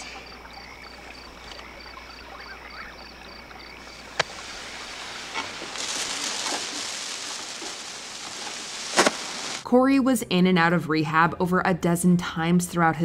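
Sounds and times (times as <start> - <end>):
crickets chirping: 0.0 - 9.6
faint hiss: 3.5 - 9.6
firework fizzing hiss: 4.0 - 9.6
sharp pop: 8.9 - 9.3.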